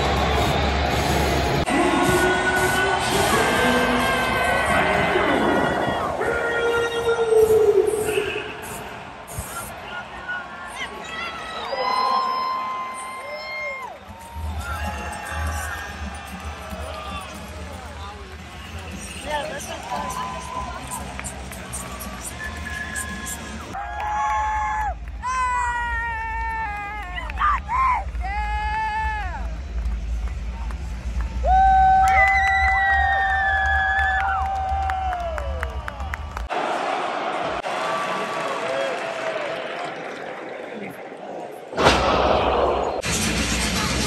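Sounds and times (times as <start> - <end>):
entrance music over loudspeakers: 0.0 - 8.8, 14.0 - 23.8, 43.0 - 44.0
crowd noise: 0.0 - 31.5, 32.6 - 44.0.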